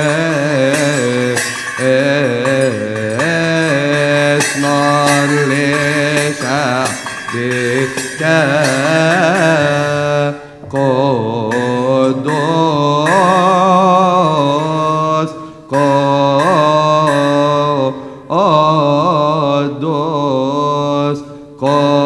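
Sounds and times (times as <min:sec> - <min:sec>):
sharp percussive strikes: 0:00.0 - 0:22.0
voices chanting a slow hymn: 0:00.0 - 0:22.0.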